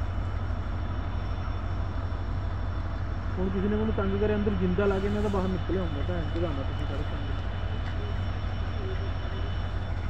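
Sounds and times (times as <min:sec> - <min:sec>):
diesel locomotive engine rumbling: 0:00.0 - 0:10.0.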